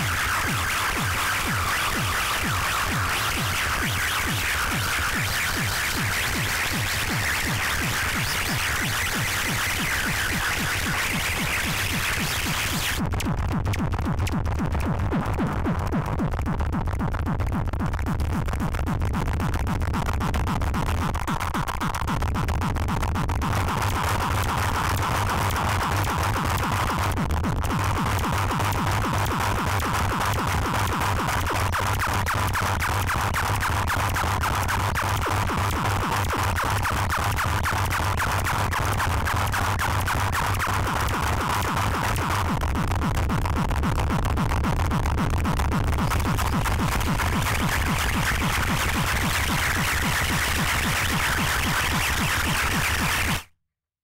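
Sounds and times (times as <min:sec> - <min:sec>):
rapid pulsing electronic throb: 0:00.0 - 0:53.5.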